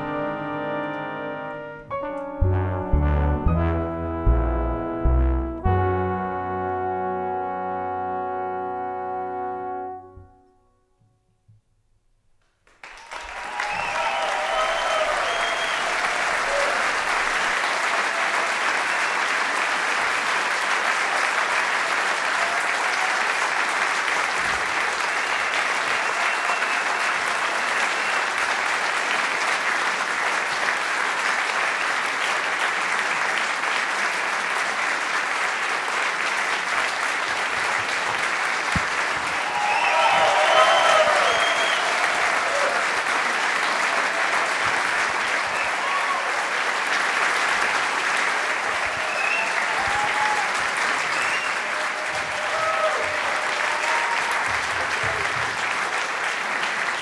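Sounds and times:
audience applauding: 0:12.6 - 0:57.0
audience cheering: 0:12.8 - 0:29.2, 0:37.3 - 0:57.0.

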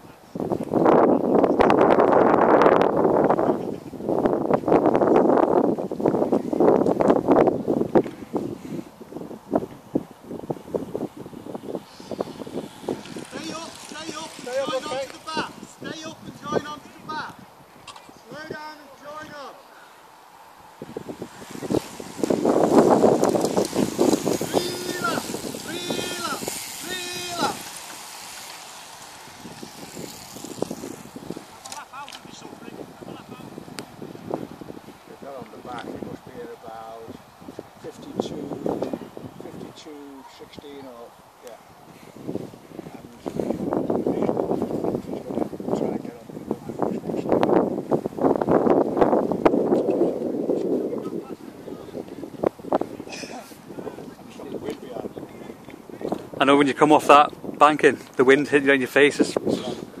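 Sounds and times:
bicycles sweeping past: 0:00.0 - 1:00.0
wind buffeting microphone: 0:00.0 - 1:00.0
short shouted calls: 0:24.2 - 0:28.1.

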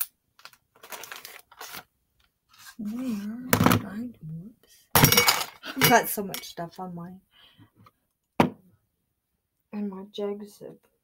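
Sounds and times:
makeup products clinking together: 0:05.0 - 0:06.5
knock: 0:08.4 - 0:08.6.

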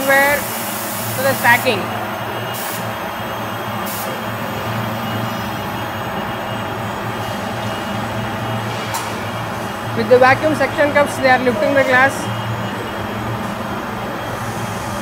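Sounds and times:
factory machinery drone: 0:00.0 - 0:15.0.

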